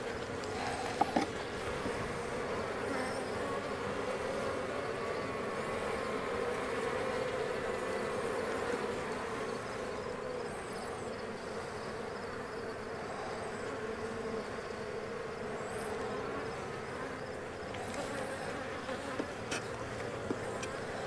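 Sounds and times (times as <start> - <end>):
bees buzzing: 0.0 - 21.0.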